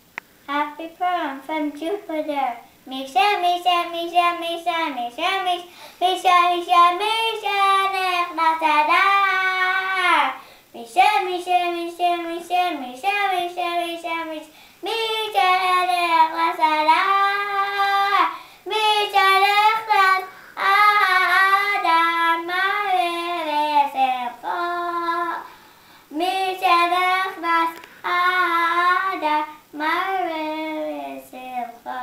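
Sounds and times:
young boy singing: 0.5s - 32.0s.

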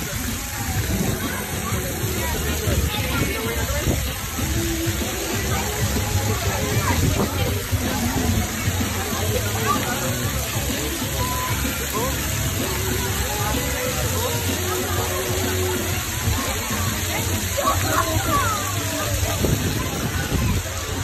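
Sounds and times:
babble of voices: 0.0s - 21.0s
background music: 0.0s - 21.0s
fountain water splashing on pavement: 0.0s - 21.0s.

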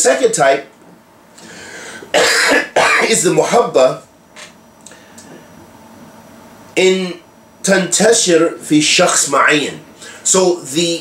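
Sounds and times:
man coughing: 2.0s - 3.3s.

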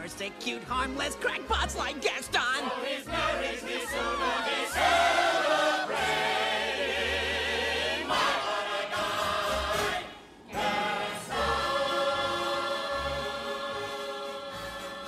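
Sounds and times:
chorus singing with vibrato: 2.6s - 15.0s.

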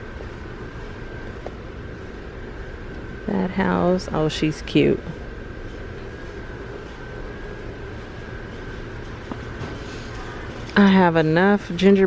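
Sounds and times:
ventilation rumble and hiss: 0.0s - 12.0s.

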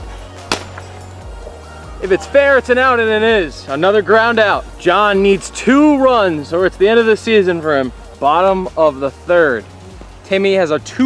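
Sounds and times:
background music: 0.0s - 11.0s
plastic bat hitting plastic ball: 0.5s - 0.9s.

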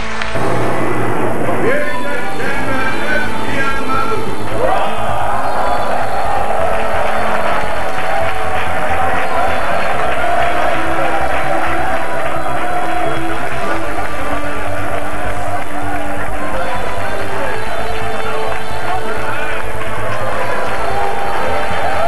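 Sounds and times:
crowd cheering and clapping: 0.0s - 22.0s
music playing: 0.0s - 22.0s.

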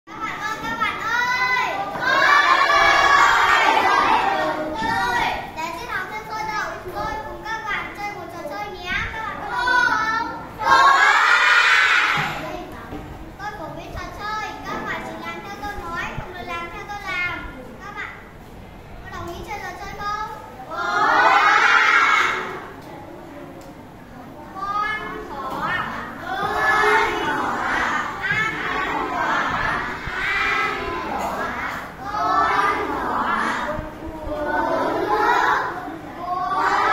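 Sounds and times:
young girl speaking: 0.1s - 2.0s, 4.2s - 10.6s, 12.2s - 20.7s, 22.3s - 26.2s
children calling out together: 0.1s - 12.8s, 19.1s - 22.8s, 24.2s - 36.9s.

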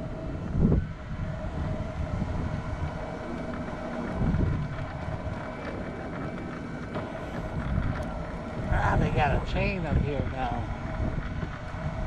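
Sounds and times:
electric wheelchair motor whine: 0.0s - 12.0s
wheels rumbling on asphalt: 0.0s - 12.0s.

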